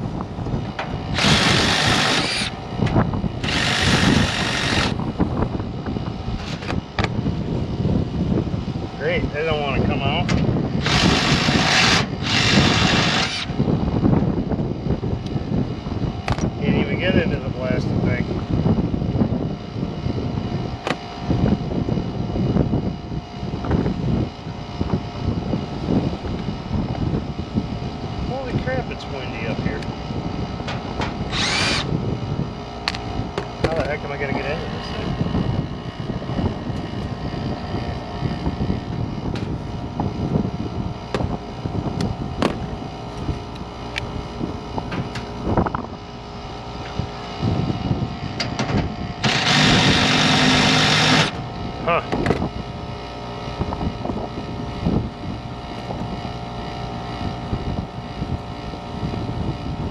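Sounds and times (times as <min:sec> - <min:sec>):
faint mechanical hum: 0:00.0 - 0:59.9
wind gusting across microphone: 0:00.0 - 0:59.9.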